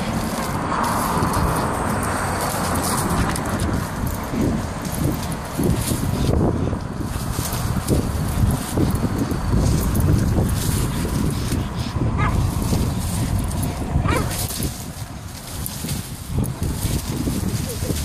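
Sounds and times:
low rumbling noise: 0:00.0 - 0:18.0.

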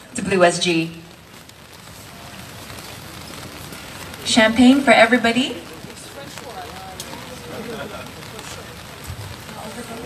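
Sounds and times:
outdoor gathering ambience: 0:00.0 - 0:10.0.

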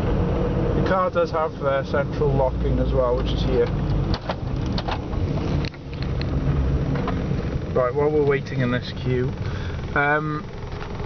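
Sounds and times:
car engine and road noise: 0:00.0 - 0:11.0.

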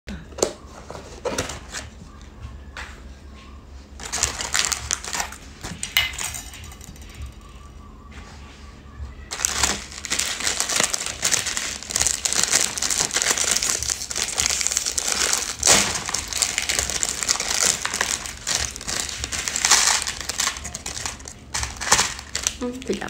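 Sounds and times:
plastic wrapper crinkling: 0:04.0 - 0:07.1, 0:09.3 - 0:23.0.

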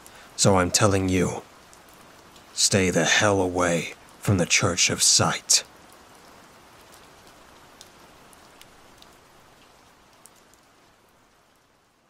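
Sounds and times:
faint steady rain: 0:00.0 - 0:12.0.

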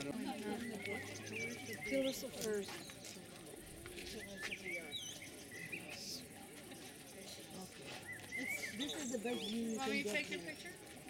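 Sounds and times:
soft outdoor murmur: 0:00.0 - 0:11.0
bird chirps: 0:00.4 - 0:03.1, 0:04.1 - 0:10.8.

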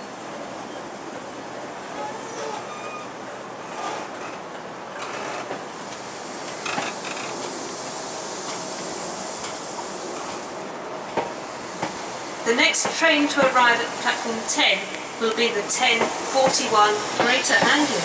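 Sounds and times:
train wheels rumbling on rails: 0:00.0 - 0:18.0
short clunks of train coaches: 0:02.0 - 0:07.6, 0:11.1 - 0:12.0.

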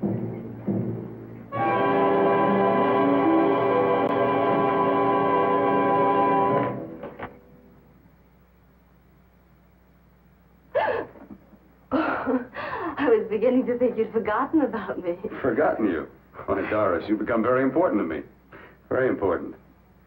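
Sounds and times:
soundtrack hiss: 0:00.0 - 0:20.0
orchestral chord: 0:01.5 - 0:07.1.

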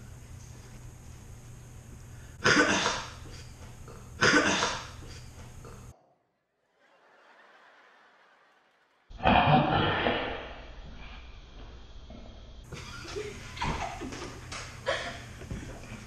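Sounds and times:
laughter: 0:12.7 - 0:15.8.

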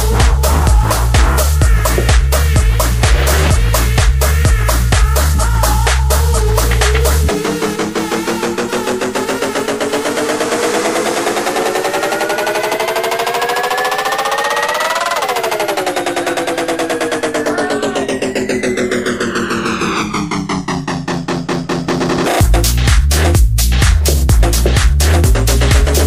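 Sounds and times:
rapid repeated synth pulses: 0:00.0 - 0:05.7, 0:06.4 - 0:22.7
techno music: 0:00.0 - 0:26.0
synth riser sweeping in pitch: 0:07.3 - 0:21.8.

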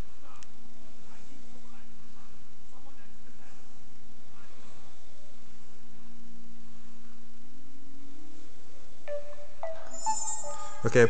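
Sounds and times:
phone startup chime: 0:09.1 - 0:11.0.

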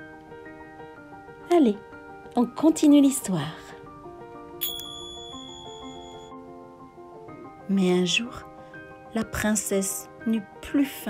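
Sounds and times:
soft background music: 0:00.0 - 0:11.0
small bell ringing: 0:04.6 - 0:06.4.

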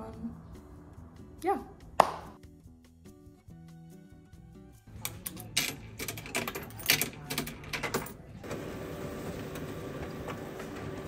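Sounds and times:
coins clinking into box: 0:05.0 - 0:08.3
printer whirring: 0:08.4 - 0:11.0.

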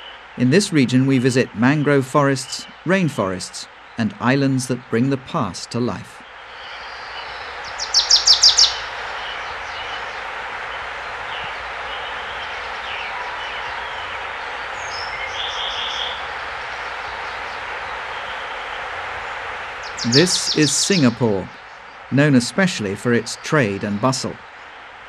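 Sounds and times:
background hiss: 0:00.0 - 0:25.0
faint bird chirps: 0:06.1 - 0:10.2, 0:11.3 - 0:18.4, 0:19.8 - 0:22.4
bird calling sharp high notes: 0:19.8 - 0:24.4.

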